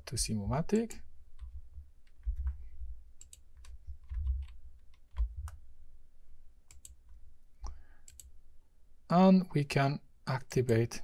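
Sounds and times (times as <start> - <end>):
computer keyboard and mouse clicks: 3.2 - 5.6, 6.7 - 7.2, 8.0 - 8.3.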